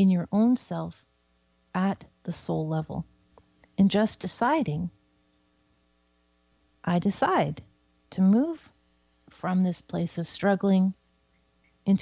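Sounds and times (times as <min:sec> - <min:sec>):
woman talking: 0:00.0 - 0:01.0, 0:01.8 - 0:03.1, 0:03.8 - 0:05.0, 0:06.8 - 0:11.0
faint electrical mains hum: 0:00.0 - 0:12.0.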